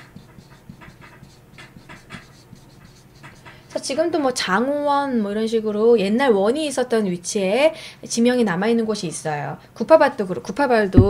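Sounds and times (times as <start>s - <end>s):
chalk scraping on chalkboard: 0.0s - 3.9s.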